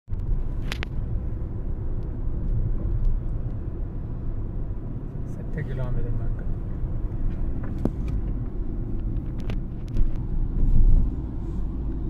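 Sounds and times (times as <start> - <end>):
car engine and tyre rumble: 0.1 - 12.0.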